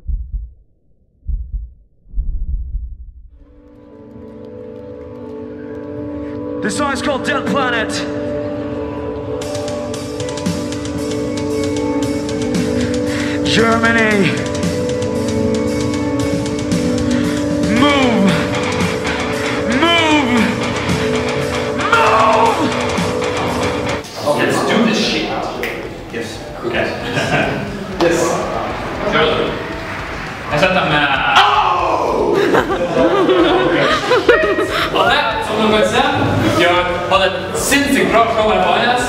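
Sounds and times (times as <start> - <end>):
deep low heartbeat thumps: 0.0 - 3.6
distorted electric guitars: 16.2 - 24.0
shouted vocal: 21.8 - 22.8, 31.1 - 32.6.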